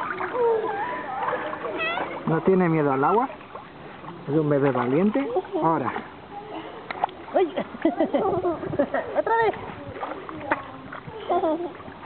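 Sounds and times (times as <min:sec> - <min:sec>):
children's voices: 0:00.0 - 0:02.2
water splashing in pool: 0:00.0 - 0:12.0.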